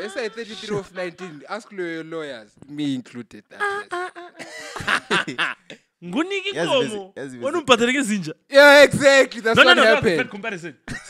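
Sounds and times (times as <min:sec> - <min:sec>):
conversation: 0:00.0 - 0:11.0
men laughing: 0:03.6 - 0:05.8, 0:09.5 - 0:11.0.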